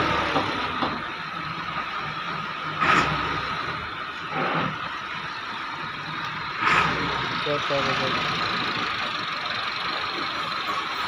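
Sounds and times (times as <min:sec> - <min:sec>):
thresher mechanical hum: 0:00.0 - 0:11.0.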